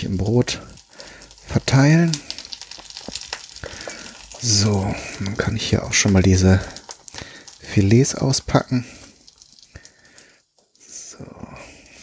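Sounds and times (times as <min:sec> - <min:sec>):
food packaging rustling: 0:00.0 - 0:10.8.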